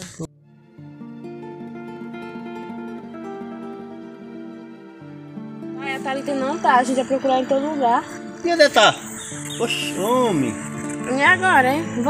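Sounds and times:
acoustic guitar picking: 0:00.5 - 0:12.0.

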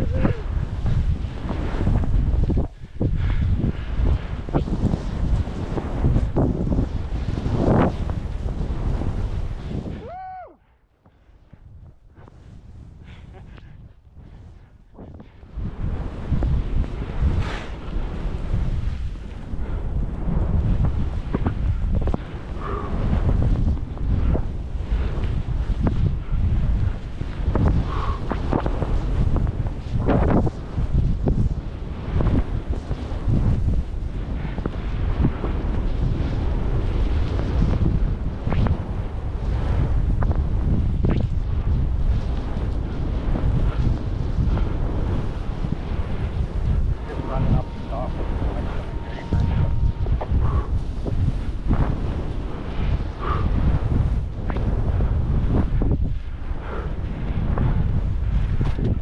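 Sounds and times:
wind buffeting microphone: 0:00.0 - 0:59.0
skis rushing through snow: 0:00.1 - 0:09.9, 0:15.2 - 0:26.1.

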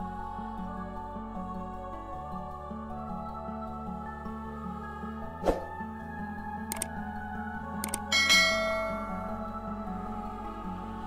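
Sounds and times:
background music: 0:00.0 - 0:11.0
bell chime: 0:08.1 - 0:09.7.

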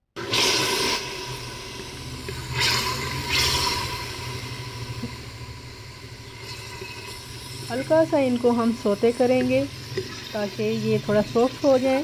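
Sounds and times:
low hum: 0:00.2 - 0:11.6
onions sizzling in hot oil: 0:00.2 - 0:12.0.

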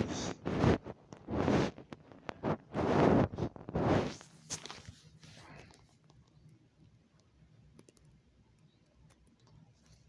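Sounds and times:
phone rustling against bedding: 0:00.0 - 0:06.0.

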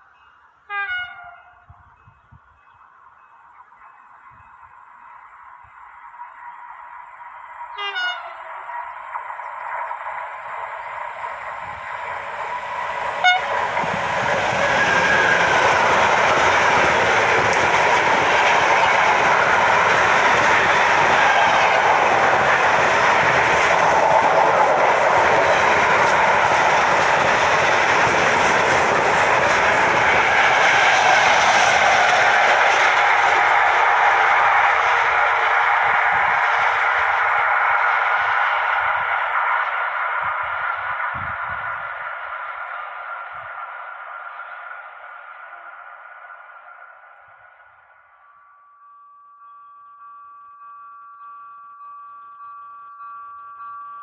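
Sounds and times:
wheels rushing on rails: 0:00.0 - 0:48.5
freight train passing: 0:00.0 - 0:54.0.

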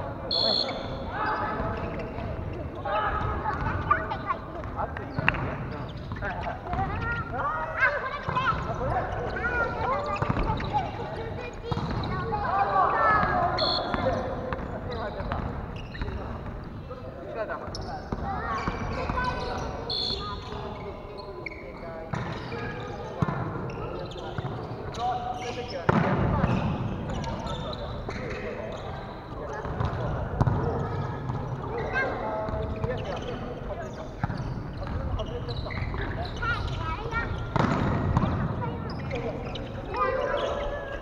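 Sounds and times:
players calling out: 0:00.2 - 0:04.2, 0:05.3 - 0:16.3, 0:18.6 - 0:25.6
shoes squeaking: 0:03.4 - 0:16.8, 0:17.6 - 0:41.0
volleyball struck and bouncing: 0:37.5 - 0:38.4.

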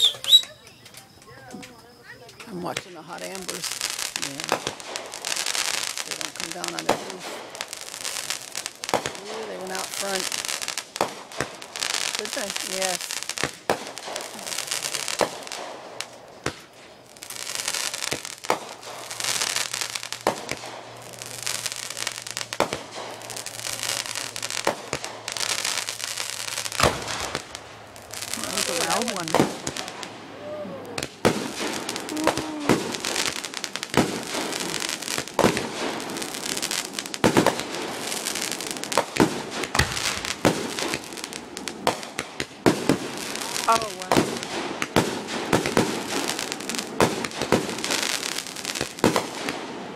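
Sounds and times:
fireworks bangs: 0:00.0 - 0:49.9
hissing crackling sparks: 0:00.0 - 0:49.9.

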